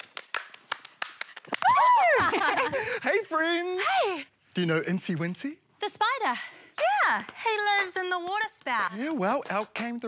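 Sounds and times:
hand claps: 0.0 - 2.2, 6.8 - 10.0.

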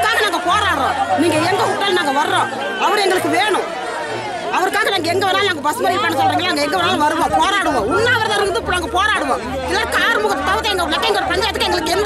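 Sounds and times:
woman speaking: 0.0 - 3.6, 4.6 - 12.0.

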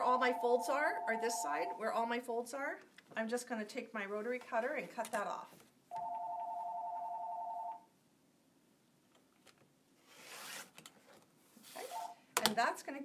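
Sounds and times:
electronic two-tone ring: 0.2 - 1.7.

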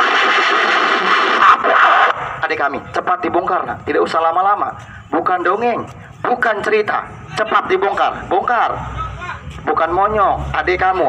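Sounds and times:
harsh rushing noise: 0.0 - 2.9.

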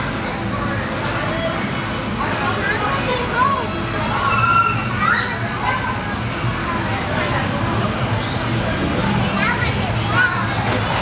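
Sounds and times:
hubbub of voices: 0.0 - 11.0.

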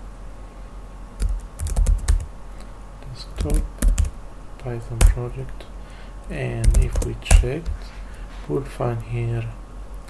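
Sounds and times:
computer keyboard typing: 1.2 - 2.3, 3.4 - 4.2, 5.0 - 5.2, 6.6 - 7.8.

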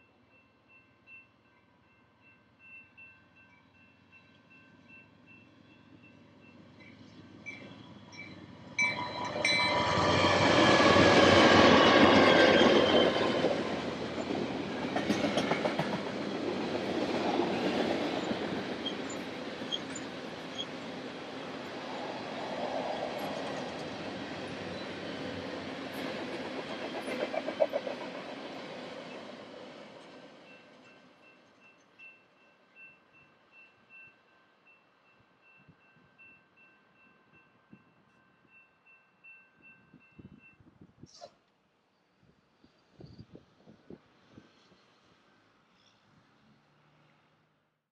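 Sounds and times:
faint crossing bell ringing: 0.0 - 10.1
train wheels clattering on rails: 6.8 - 21.1, 21.8 - 31.8.

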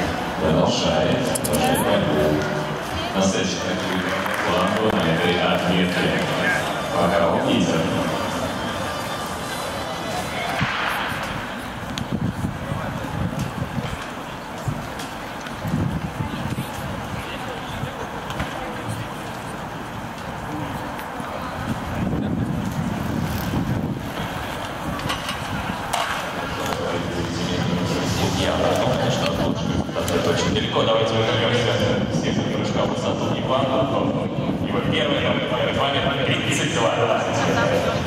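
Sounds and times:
echoing public address voice: 0.0 - 10.8, 26.4 - 38.0
crowd murmur: 0.0 - 38.0.

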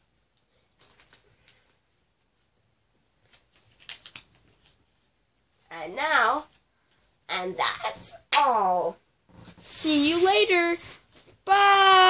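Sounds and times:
cards and sleeves clicking: 0.6 - 1.8, 3.2 - 4.8.

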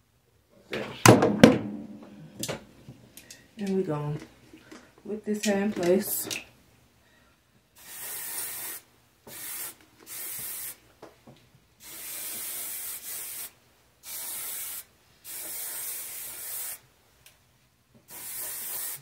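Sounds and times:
spray bottle misting: 7.8 - 10.8, 18.1 - 19.0.

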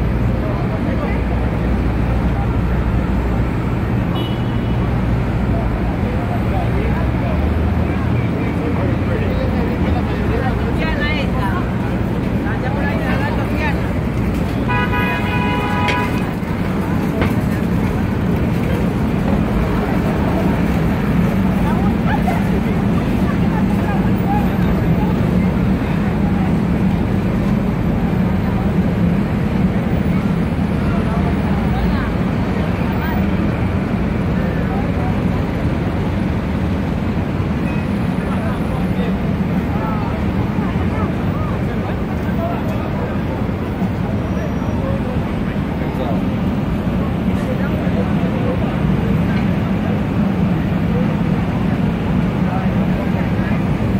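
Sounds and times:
crowd chatter: 0.0 - 53.9
traffic noise: 0.0 - 53.9
vehicle horn: 4.1 - 4.8, 14.7 - 16.3.

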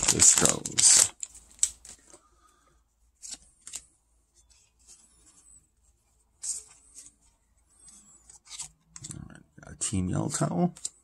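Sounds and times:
light rustling of cards: 0.0 - 9.3
cards scraping together: 6.4 - 9.2.

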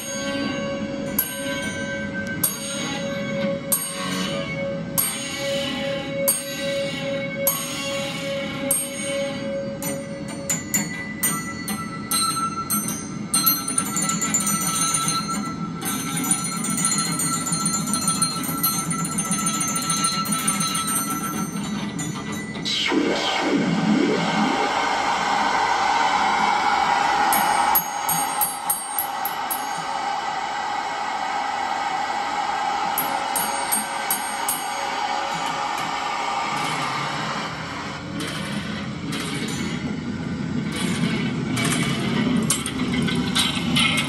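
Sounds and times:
electronic noise music: 0.0 - 38.3
swooping pitch glide: 22.4 - 27.0.

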